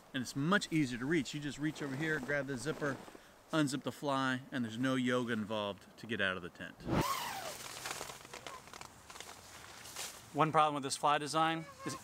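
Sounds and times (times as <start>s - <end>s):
tent zipper pulled open: 6.8s - 8.9s
nylon fabric rustling: 6.8s - 10.3s.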